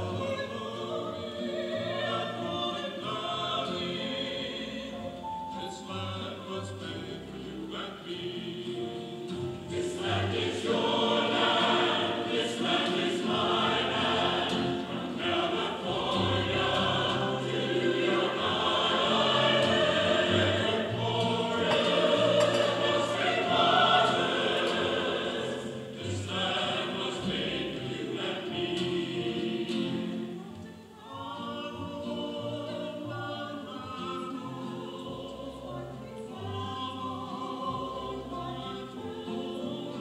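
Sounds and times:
vocal ensemble singing: 0.0s - 40.0s.

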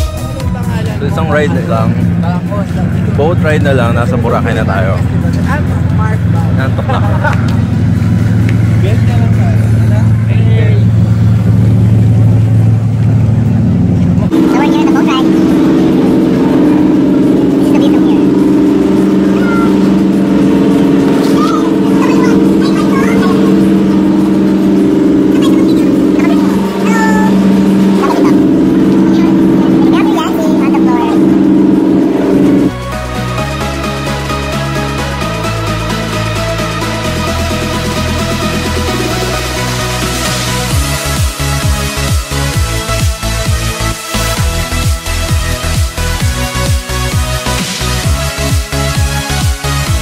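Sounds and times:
ferry engines droning: 0.0s - 50.0s.

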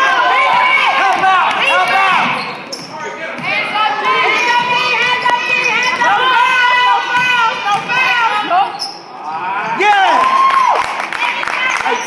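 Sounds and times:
people shouting: 0.0s - 2.4s, 3.4s - 12.0s
basketball bouncing on gym floor: 0.4s - 6.2s, 7.0s - 8.2s.

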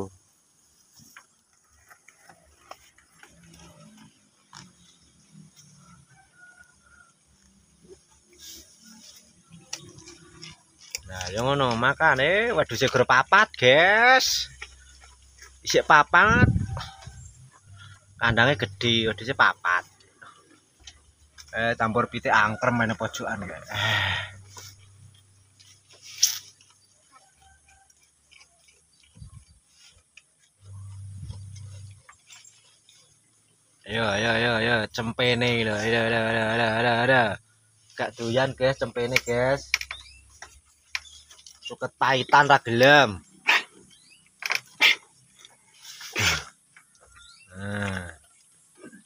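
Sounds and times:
rustling and chewing of leaves: 0.0s - 49.0s
goat rough call: 22.5s - 26.6s, 44.6s - 49.0s
low steady hum: 30.6s - 32.4s.

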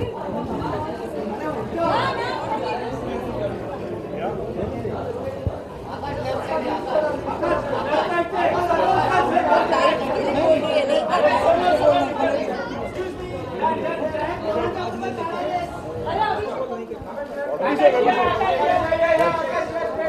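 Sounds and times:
indistinct group chatter: 0.0s - 20.0s.

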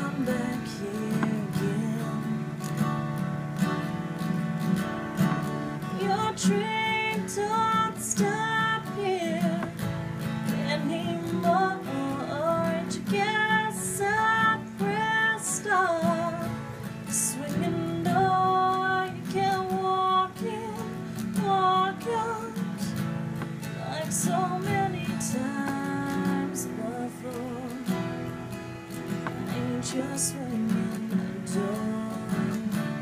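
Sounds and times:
strummed acoustic guitar: 0.0s - 33.0s
woman singing country song: 0.0s - 33.0s.

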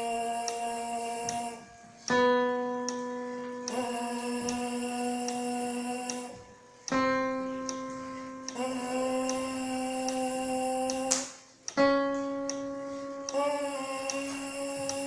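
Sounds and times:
piano note: 0.0s - 15.0s.

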